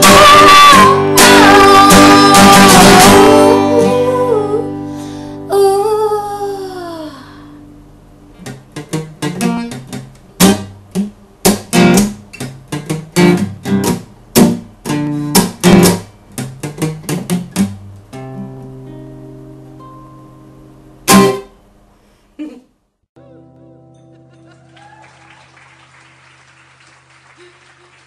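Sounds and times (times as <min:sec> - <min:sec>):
acoustic guitar playing: 0:00.0 - 0:06.2, 0:07.6 - 0:22.0, 0:23.2 - 0:24.8.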